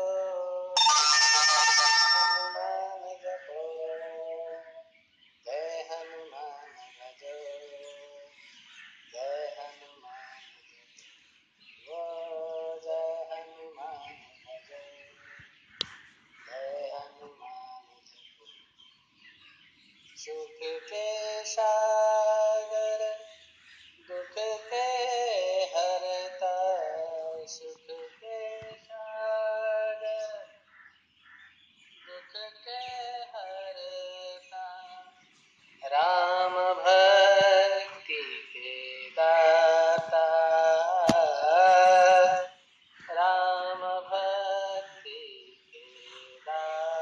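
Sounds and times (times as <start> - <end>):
person singing devotional song: 0.0 - 15.4, 16.4 - 18.3, 20.1 - 30.7, 32.0 - 47.0
musical accompaniment: 0.8 - 2.7.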